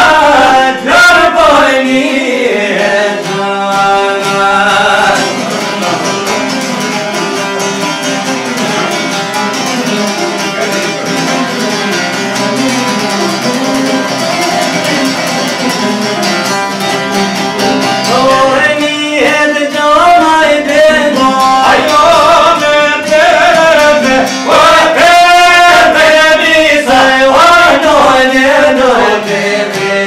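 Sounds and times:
man's voice: 0.0 - 6.4, 18.0 - 30.0
plucked lutes playing fast: 0.0 - 30.0.

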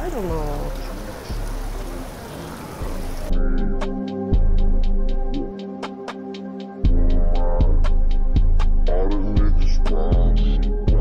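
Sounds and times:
indoor background hiss: 0.0 - 3.3
faint music: 0.0 - 11.0.

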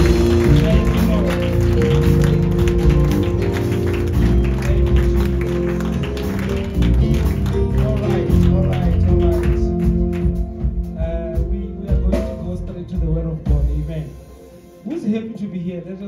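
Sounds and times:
live band music: 0.0 - 16.0.

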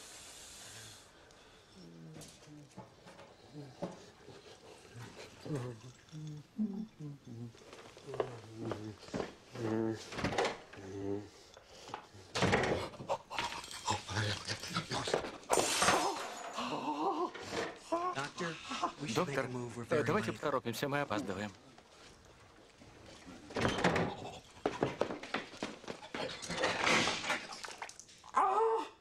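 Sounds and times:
clattering and rustling at washbasin: 2.1 - 6.1, 7.6 - 18.5, 21.3 - 28.2.

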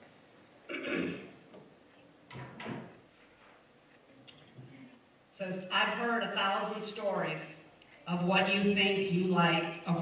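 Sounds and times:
person clearing throat: 0.7 - 1.4.

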